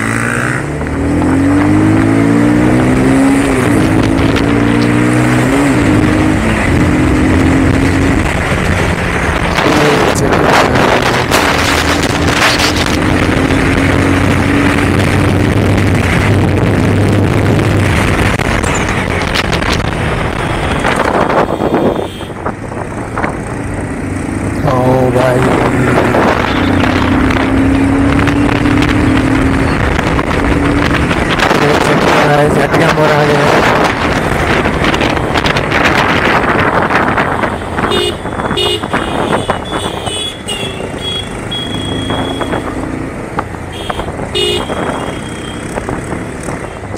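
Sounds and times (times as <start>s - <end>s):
motorcycle engine hum: 0.0s - 46.9s
wind rush: 0.7s - 40.1s.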